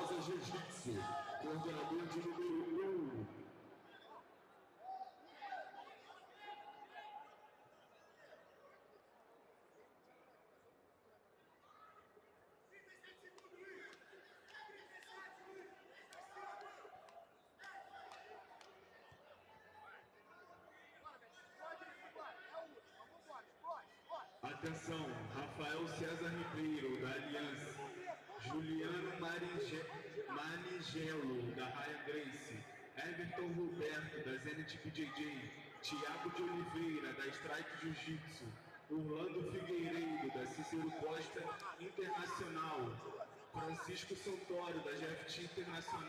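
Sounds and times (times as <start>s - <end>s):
loud voice: 0.0s - 3.3s, 33.0s - 46.0s
murmur of large hall: 0.0s - 46.0s.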